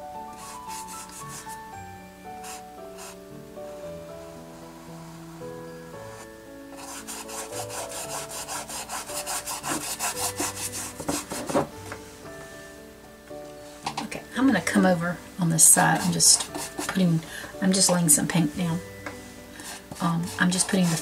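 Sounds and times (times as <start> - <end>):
soft background music: 0.0 - 21.0
brush scrubbing on canvas: 0.4 - 1.6, 2.4 - 3.2, 6.1 - 11.4, 15.8 - 17.0, 19.2 - 21.0.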